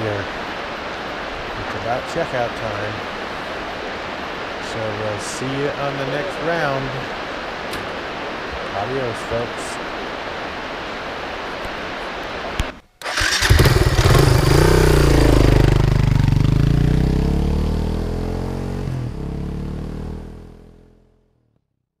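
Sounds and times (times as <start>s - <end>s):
river water rushing: 0.0s - 19.9s
motorcycle engine running: 13.2s - 20.7s.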